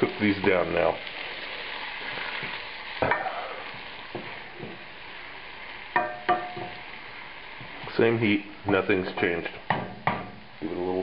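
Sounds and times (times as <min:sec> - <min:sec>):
vegetables sizzling in a pan: 0:00.0 - 0:11.0.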